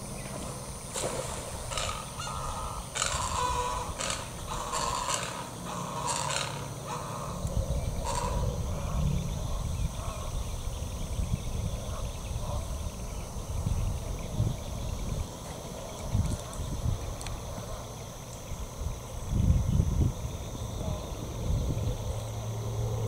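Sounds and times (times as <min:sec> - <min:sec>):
harsh bird calls: 0:01.0 - 0:15.2.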